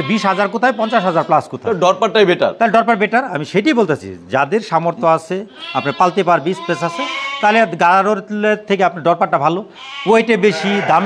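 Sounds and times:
sheep bleating: 0.0s - 1.5s, 5.5s - 7.8s, 9.8s - 11.0s
man talking: 0.0s - 11.0s.

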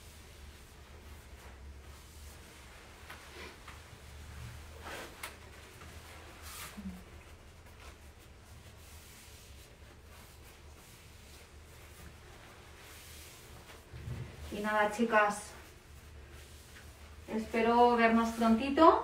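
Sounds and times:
low steady hum: 0.0s - 19.0s
paper tissue rustling: 0.0s - 19.0s.

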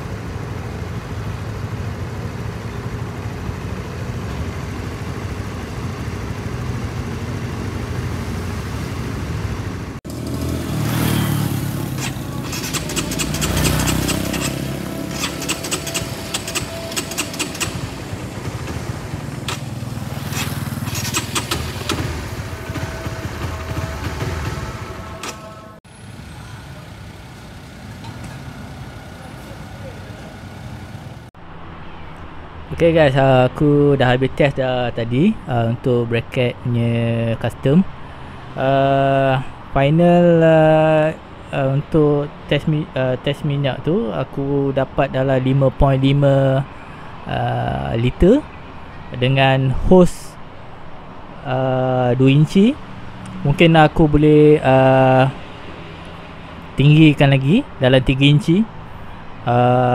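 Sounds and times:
motorcycle engine idling: 0.0s - 8.2s, 9.6s - 31.3s
street noise: 0.0s - 59.9s.

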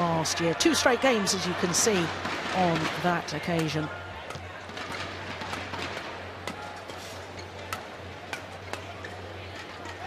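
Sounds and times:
indoor arena murmur and hum: 0.0s - 10.0s
rackets hitting shuttlecocks: 2.2s - 10.0s.

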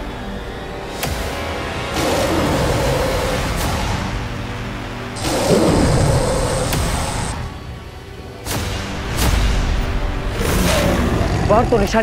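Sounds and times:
steady high whine: 3.2s - 8.4s.

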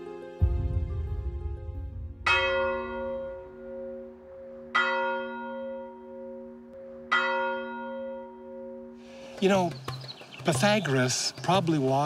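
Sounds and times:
large bell ringing: 2.2s - 9.7s.

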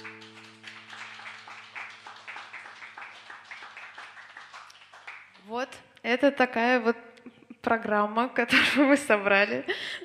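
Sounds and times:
audience clapping: 0.0s - 5.5s.

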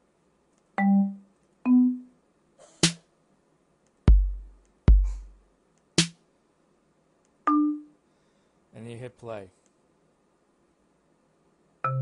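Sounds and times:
electronic drum hit: 4.1s - 5.4s.

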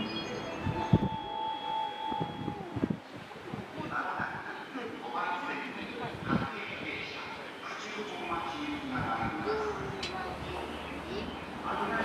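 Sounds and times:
steady electronic tone: 0.0s - 2.9s
low background noise: 0.0s - 12.0s.

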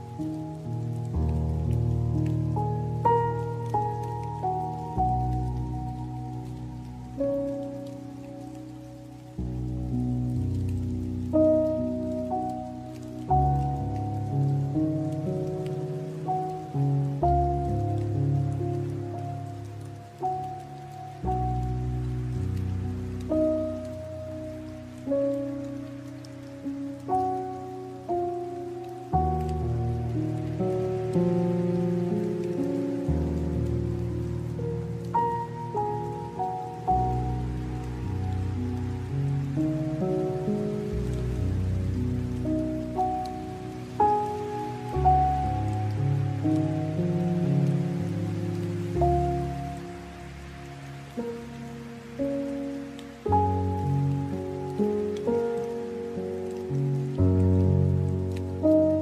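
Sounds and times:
gentle piano melody: 0.0s - 59.0s
rain pattering: 0.0s - 59.0s.

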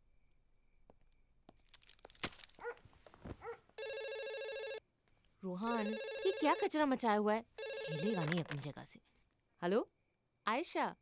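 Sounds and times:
dog yelping: 2.6s - 2.8s, 3.4s - 3.7s
telephone ringing: 3.8s - 4.9s, 5.6s - 8.6s.

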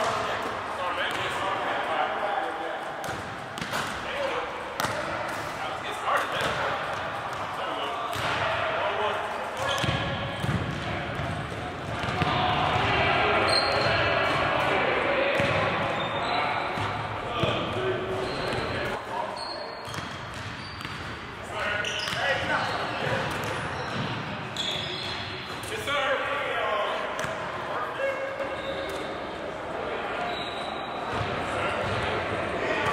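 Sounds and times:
ball hitting rim and backboard: 3.0s - 4.0s, 9.6s - 13.0s, 15.3s - 15.7s
basketballs bouncing on hardwood: 9.7s - 12.9s.

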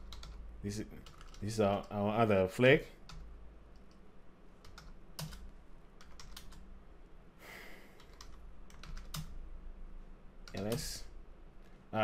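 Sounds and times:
computer keyboard typing: 0.0s - 0.4s, 1.0s - 2.0s, 3.1s - 4.0s, 4.6s - 6.6s, 8.0s - 9.4s, 10.4s - 10.9s.

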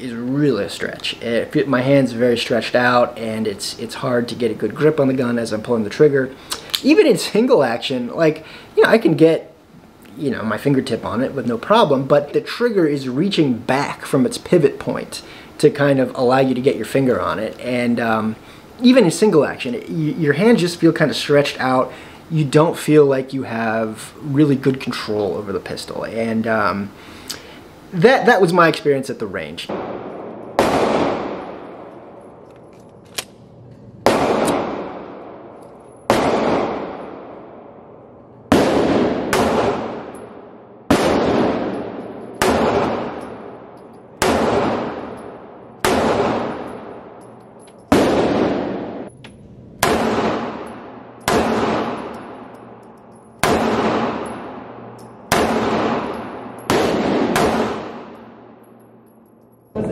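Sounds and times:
pistol shots echoing indoors: 29.7s - 32.4s, 34.0s - 49.1s, 49.8s - 59.6s.

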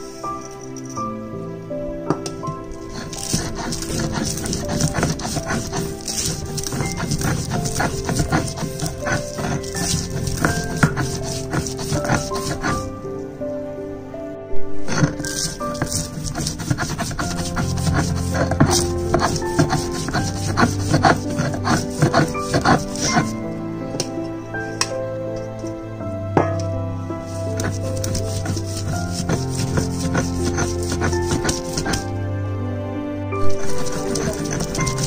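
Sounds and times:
music with sustained notes: 0.0s - 35.0s
stone scraping on grinding stone: 2.2s - 12.9s, 14.8s - 24.1s, 27.3s - 32.1s, 33.4s - 35.0s.

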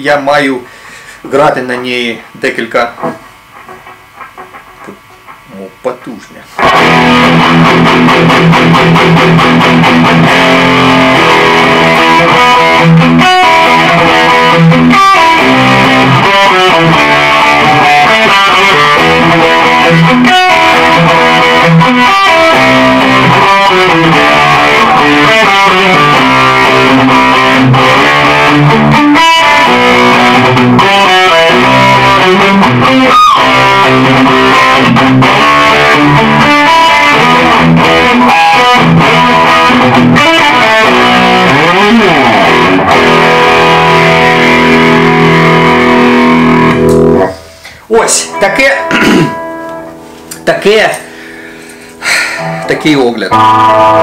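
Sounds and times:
distorted electric guitar riffs: 0.0s - 54.0s.

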